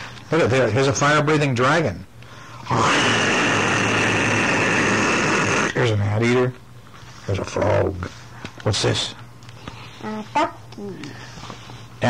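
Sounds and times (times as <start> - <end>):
man roaring like a dragon: 2.6 - 5.8.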